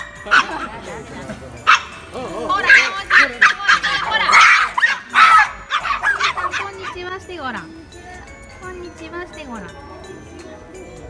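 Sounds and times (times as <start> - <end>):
small dogs yapping: 0.0 - 0.8, 1.6 - 7.0.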